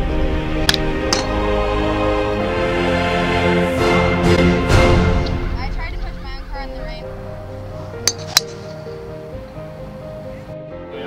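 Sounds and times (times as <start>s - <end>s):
background music: 0.0s - 11.0s
golf club striking ball: 0.6s - 1.5s, 7.7s - 9.3s.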